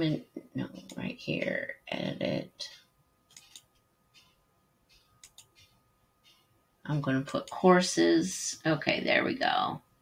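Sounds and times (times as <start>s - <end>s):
computer mouse clicks: 3.3s - 6.5s.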